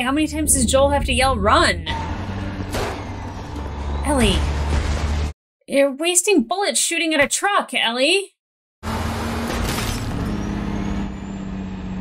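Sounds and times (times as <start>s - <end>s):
truck engine rumbling: 0.0s - 5.3s, 8.8s - 12.0s.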